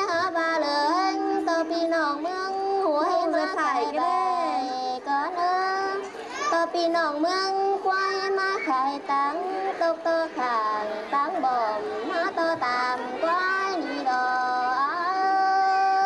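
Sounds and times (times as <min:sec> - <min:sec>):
woman singing folk song: 0:00.0 - 0:16.0.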